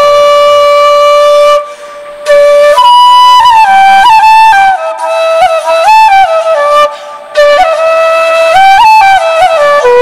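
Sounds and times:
bamboo flute melody: 0.0s - 10.0s.

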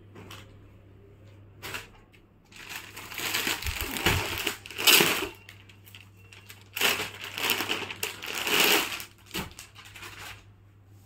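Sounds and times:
plastic packet crinkling: 2.5s - 10.5s.

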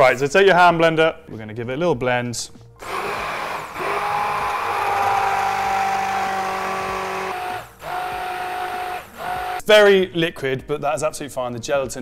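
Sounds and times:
stick blender motor whine: 2.8s - 9.6s.

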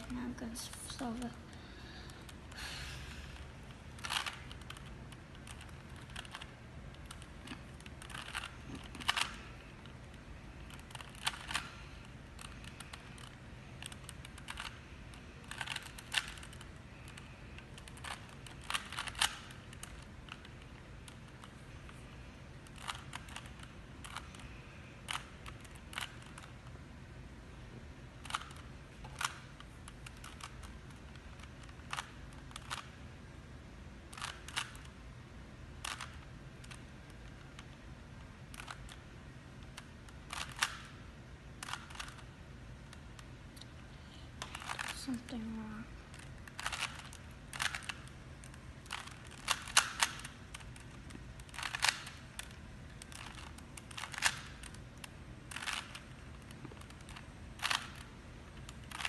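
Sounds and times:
puzzle cube clicking as turned: 3.3s - 26.8s, 28.2s - 33.0s, 34.0s - 35.0s, 35.7s - 43.8s, 44.4s - 45.0s, 46.1s - 59.0s.

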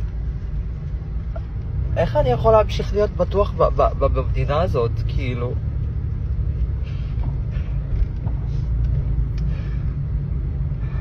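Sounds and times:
car cabin rumble: 0.0s - 11.0s
young man speaking tearfully: 2.0s - 5.6s.

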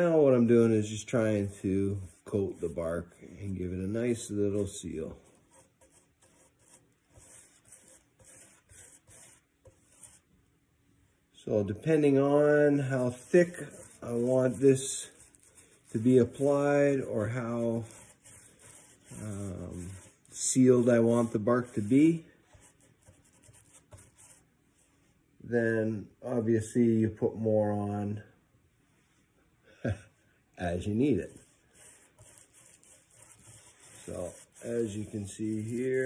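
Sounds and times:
paintbrush swishing strokes: 0.5s - 10.3s, 12.0s - 25.2s, 31.2s - 36.0s.

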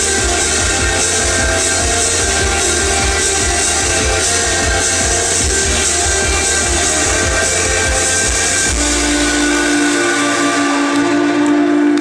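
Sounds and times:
distorted electric guitar: 0.0s - 12.0s
drums: 0.0s - 12.0s.

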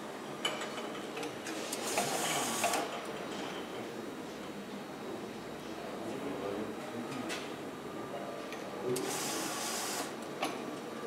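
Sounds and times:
labeling machine running: 8.9s - 10.2s.

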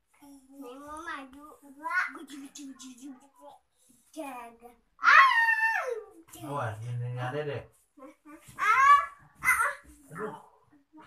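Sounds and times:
toddlers babbling and calling out: 8.4s - 10.0s.

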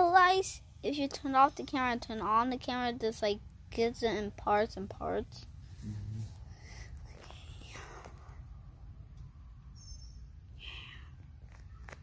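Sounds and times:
faint whispering: 5.8s - 8.5s, 10.6s - 11.2s.

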